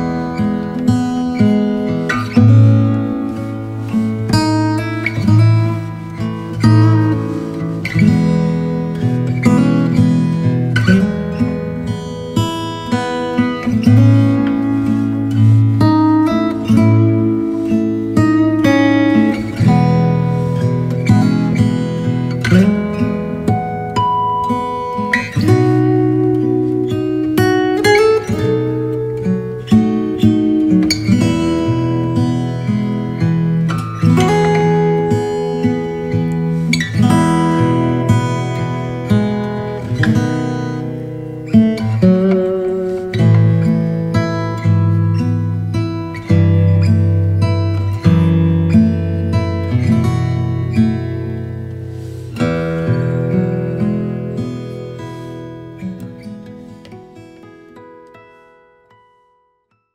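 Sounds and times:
acoustic guitar playing: 0:00.0 - 0:59.9.

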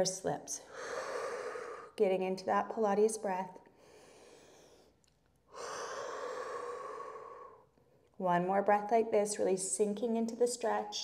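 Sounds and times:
woman breathing out slowly: 0:00.7 - 0:02.0, 0:03.8 - 0:07.7.

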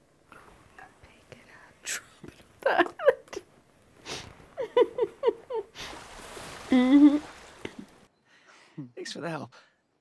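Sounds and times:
woman whispering: 0:00.7 - 0:02.2.

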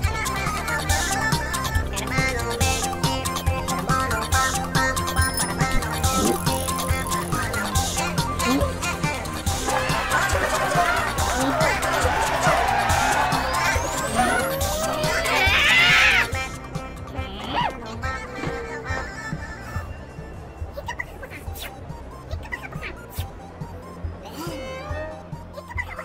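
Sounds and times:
cartoon background music: 0:00.0 - 0:26.0
slapstick sound effects: 0:05.2 - 0:06.8.

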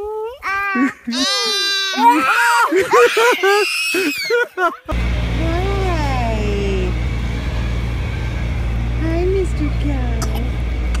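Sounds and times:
low rumble: 0:04.9 - 0:11.0.

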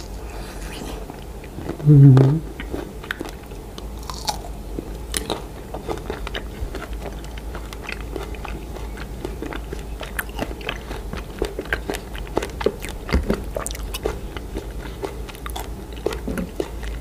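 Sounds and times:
crunchy chewing: 0:00.0 - 0:17.0.

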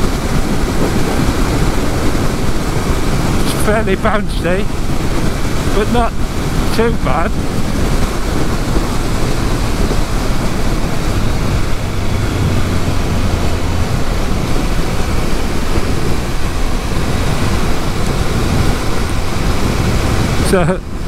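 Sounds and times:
motorcycle engine running: 0:00.0 - 0:21.0
wind rushing over microphone: 0:00.0 - 0:21.0.

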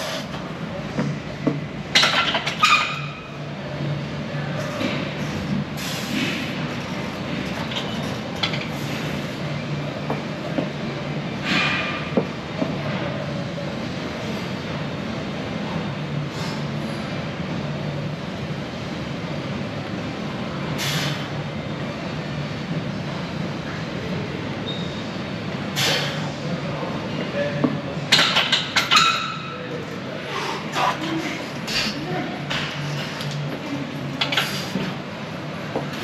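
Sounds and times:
gym room hum and hiss: 0:00.0 - 0:36.0
short hissing breaths: 0:05.2 - 0:06.2, 0:20.8 - 0:21.4, 0:25.8 - 0:26.3.

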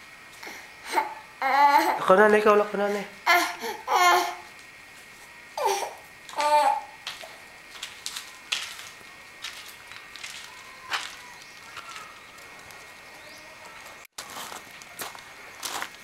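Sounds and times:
steady hiss: 0:00.0 - 0:16.0.

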